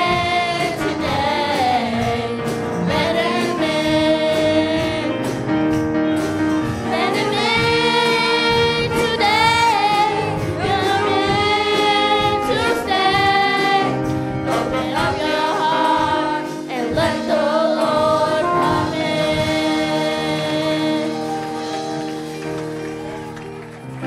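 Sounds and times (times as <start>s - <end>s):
youth choir singing: 0.0s - 5.3s, 6.8s - 21.6s
instrumental accompaniment: 0.0s - 24.0s.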